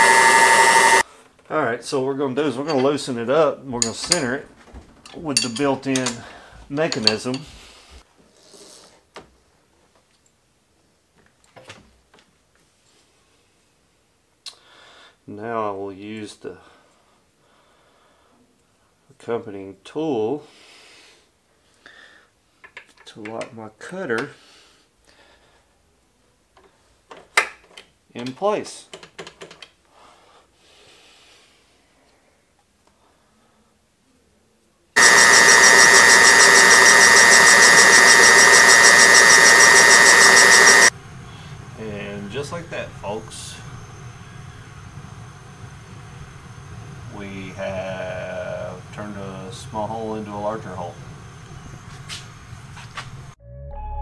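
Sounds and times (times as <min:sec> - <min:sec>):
boring bar mechanical whine: 0:00.0 - 0:01.0, 0:35.0 - 0:53.4.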